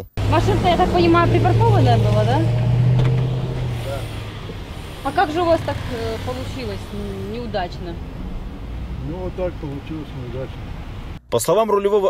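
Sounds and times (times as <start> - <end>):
car engine humming: 0.0 - 11.3
street traffic: 0.0 - 11.4.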